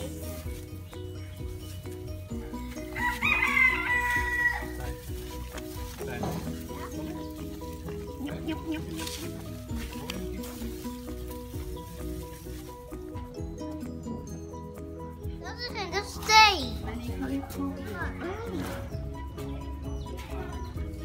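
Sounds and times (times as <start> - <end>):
background music repeating melody: 0.0 - 21.0
rooster crowing: 2.9 - 5.0.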